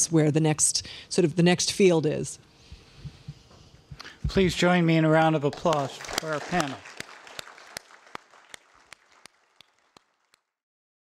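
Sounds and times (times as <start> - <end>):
audience applauding: 5.0 - 10.5.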